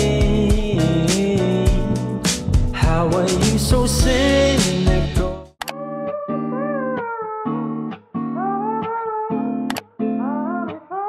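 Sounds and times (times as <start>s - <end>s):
background music: 0.0s - 6.4s
plucked guitar with slide melody: 0.0s - 11.0s
short click: 9.7s - 9.9s.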